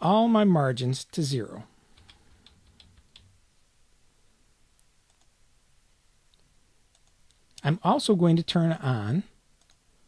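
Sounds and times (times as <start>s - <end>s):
mouse clicks: 4.8s - 5.3s, 6.3s - 7.7s, 9.6s - 9.8s.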